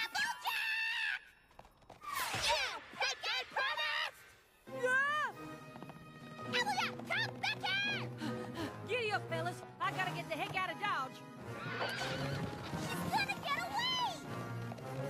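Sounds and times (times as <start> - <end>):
background music: 3.2 - 15.0.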